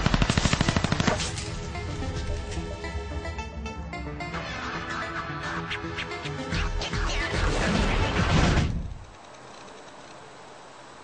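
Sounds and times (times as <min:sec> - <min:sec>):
automatic gunfire burst: 0:00.0 - 0:01.3
music: 0:00.1 - 0:08.9.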